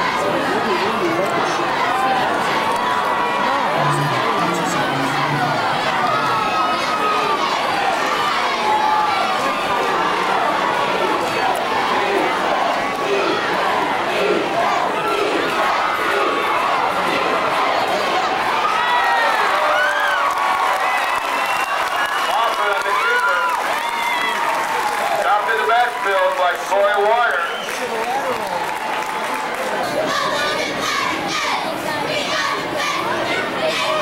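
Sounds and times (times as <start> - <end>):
stadium crowd cheering: 0.0 - 34.0
single voices shouting: 29.8 - 34.0.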